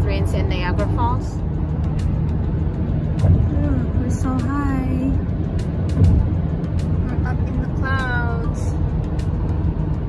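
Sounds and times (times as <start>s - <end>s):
car road and engine rumble: 0.0s - 10.0s
music with ticking beat: 0.0s - 10.0s
car bump: 5.8s - 6.5s.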